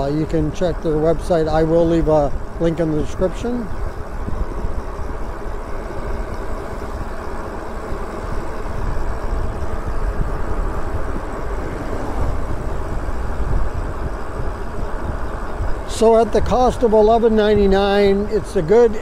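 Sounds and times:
tyre and road noise: 0.0 - 19.0
wind buffeting microphone: 0.0 - 19.0.

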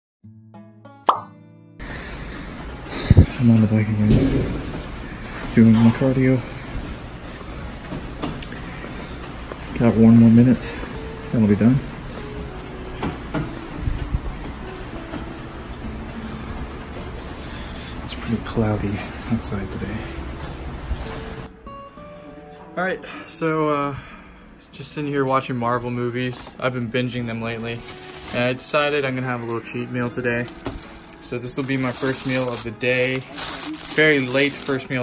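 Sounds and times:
cartoon plop pop: 1.1 - 1.4.

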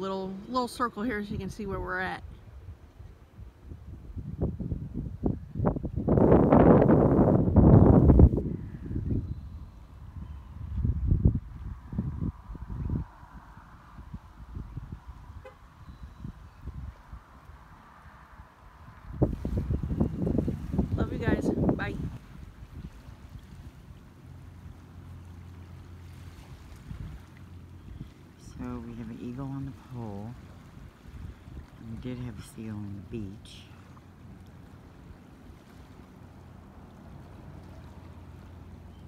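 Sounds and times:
wind buffeting microphone: 0.0 - 39.0.

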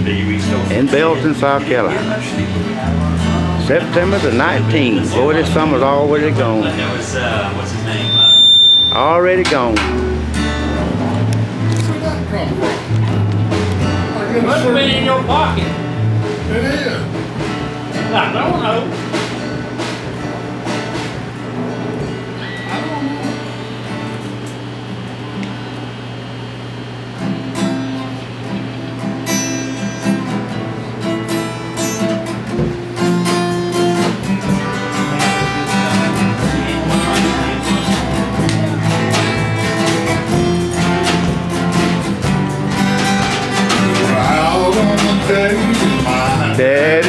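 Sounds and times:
acoustic guitar: 0.0 - 47.0
drums: 0.0 - 47.0
electric bass: 0.0 - 47.0.

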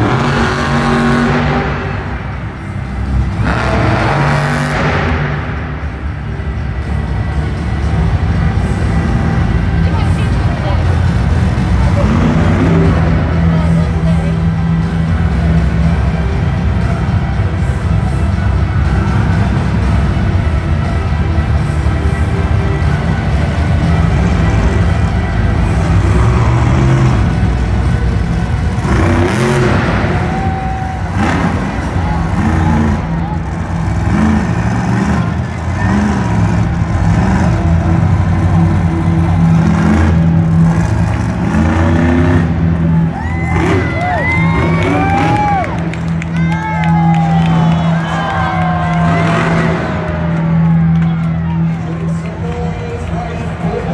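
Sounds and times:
monster truck engine revving: 0.0 - 53.9.

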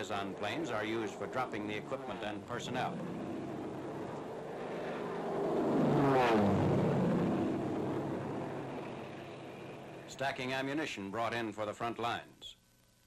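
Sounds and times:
propeller aircraft passing by: 0.0 - 10.1.

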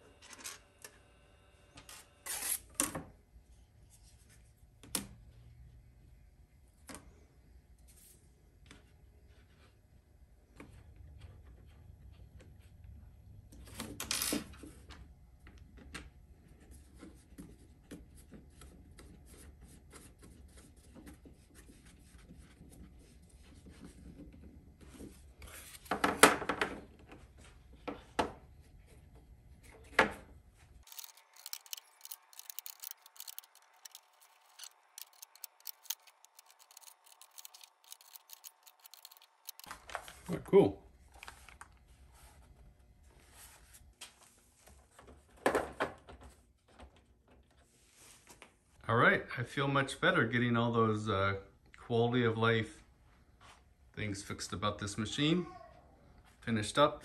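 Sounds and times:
wooden parts rubbing and scraping: 30.8 - 39.7.

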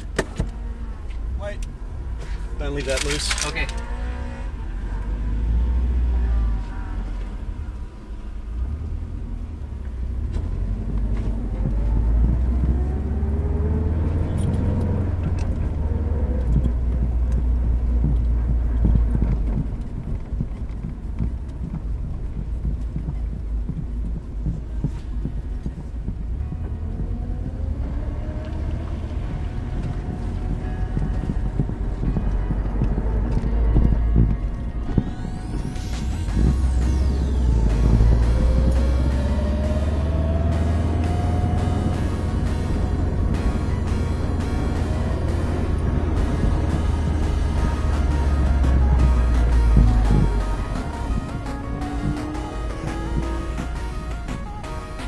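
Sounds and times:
car engine accelerating: 0.0 - 55.0
electronic music: 10.5 - 55.0.

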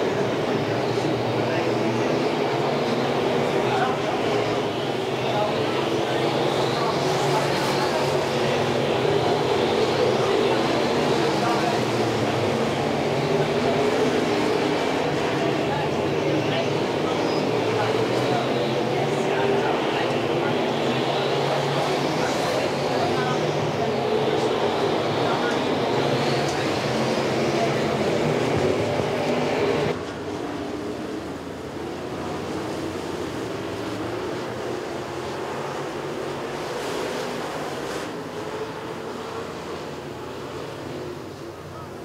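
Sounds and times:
race car engines droning: 0.0 - 42.0.

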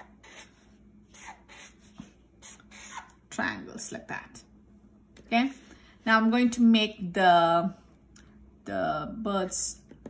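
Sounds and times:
marker scratching on paper: 0.0 - 3.2.

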